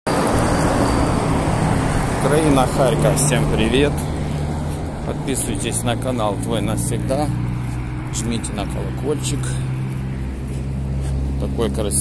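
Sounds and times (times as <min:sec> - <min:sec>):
road traffic: 0:00.1 - 0:12.0
truck passing close: 0:00.1 - 0:12.0.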